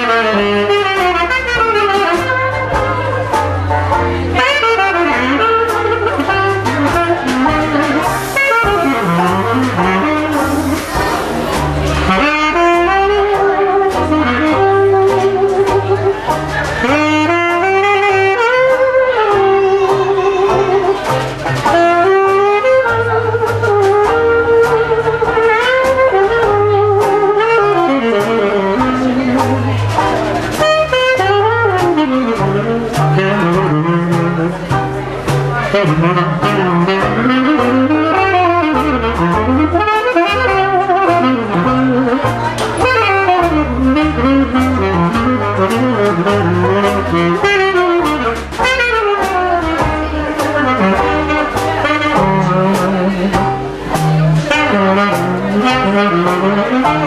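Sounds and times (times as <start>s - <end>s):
electric bass guitar: 0.0s - 57.0s
saxophone melody: 0.0s - 57.0s.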